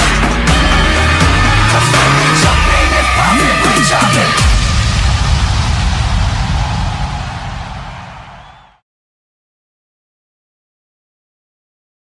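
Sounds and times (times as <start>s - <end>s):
low rumble: 1.2s - 8.6s
dense rushing noise: 1.8s - 8.8s.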